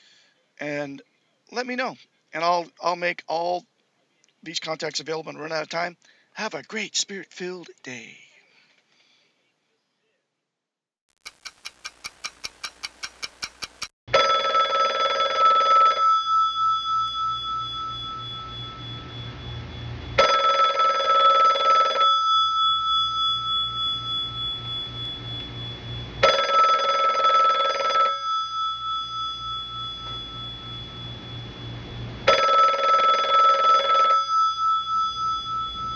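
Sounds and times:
fast ringing bell trill: 14.4 - 19.2, 20.2 - 35.9
heavy bell strokes: 16.2 - 20.0, 22.0 - 26.3, 28.2 - 32.3, 34.0 - 35.9.

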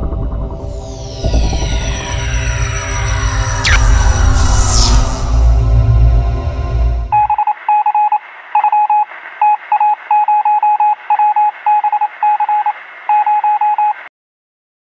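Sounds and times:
short quick electronic beeps: 0.8 - 14.0.

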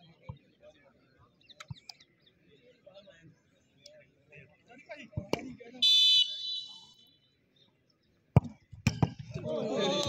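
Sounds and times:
referee whistle blast: 5.8 - 7.1.

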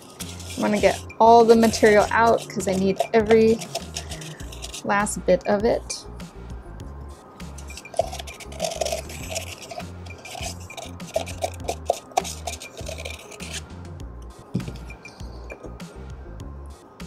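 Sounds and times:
plastic spoon scraping plastic cup: 0.0 - 5.2, 7.5 - 13.7
background music with low beat: 0.0 - 17.0.

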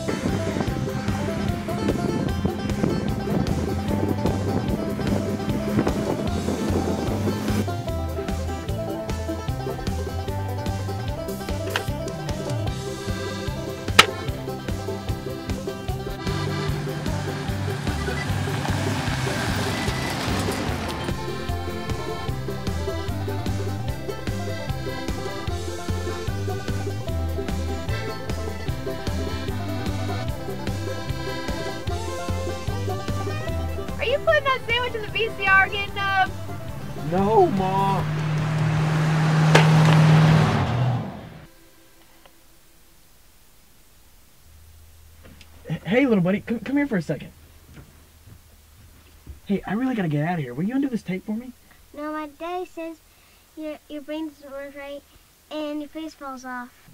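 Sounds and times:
vehicle driving on gravel road: 0.0 - 27.8, 28.8 - 41.6
background music: 0.0 - 46.3.

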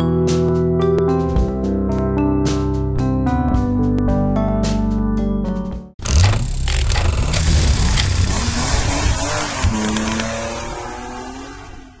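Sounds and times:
music: 0.0 - 6.0
car engine revving: 6.0 - 12.0.

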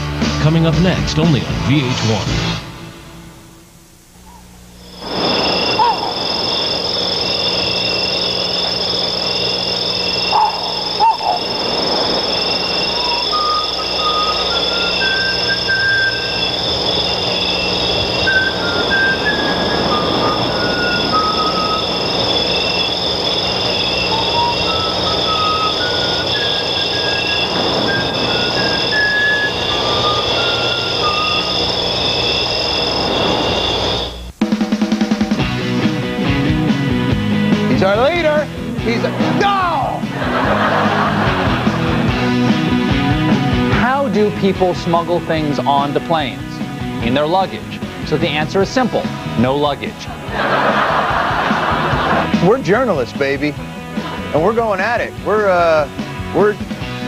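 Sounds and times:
low hum: 2.3 - 34.5
electronic beeping music: 4.9 - 34.6.

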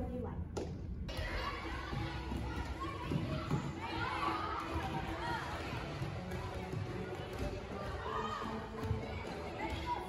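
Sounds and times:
children chattering and calling out: 1.1 - 6.0.

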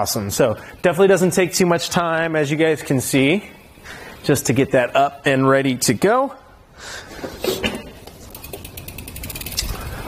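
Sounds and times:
bicycle freewheel clicking: 0.2 - 5.4, 8.0 - 10.0.

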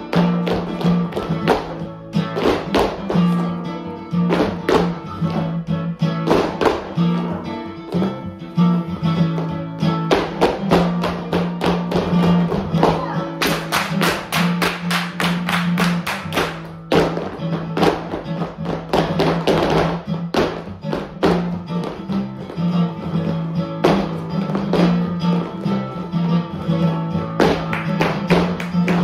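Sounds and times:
flamenco guitar: 0.0 - 29.0.

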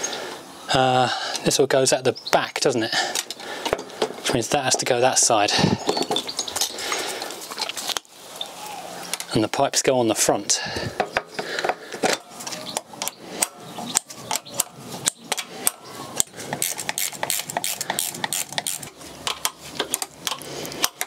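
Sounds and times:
metallic clicks of hand tools: 13.0 - 21.0.

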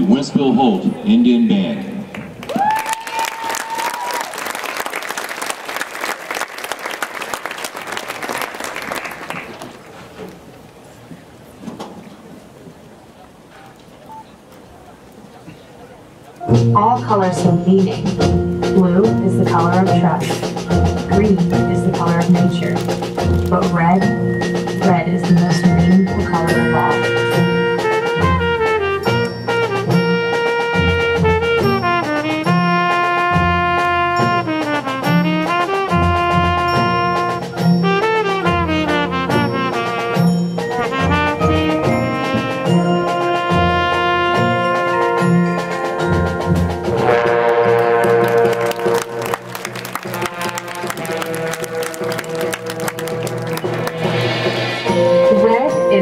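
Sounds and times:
brass chords: 16.4 - 56.0
marching band playing: 16.4 - 56.0
sharp percussion strikes: 16.5 - 47.2, 50.1 - 56.0.

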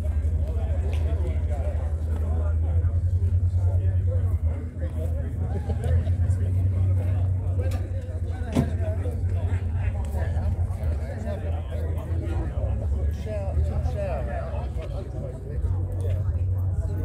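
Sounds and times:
people chattering: 0.0 - 17.0.

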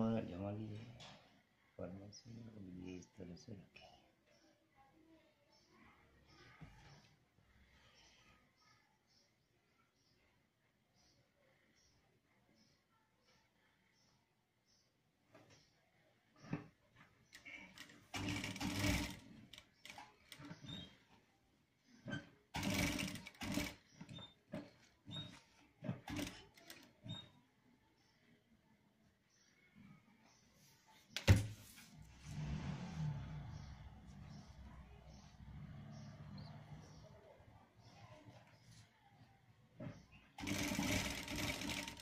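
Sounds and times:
sewing machine stitching: 17.4 - 21.2, 22.0 - 27.3, 39.8 - 42.0.

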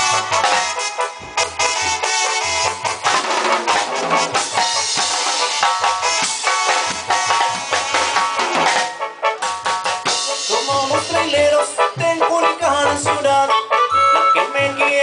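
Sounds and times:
drum kit beat: 0.0 - 15.0
live instrumental band music: 0.0 - 15.0.

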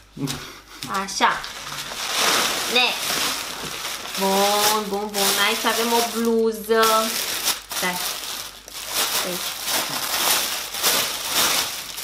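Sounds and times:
plastic bag crinkling: 1.3 - 12.0.

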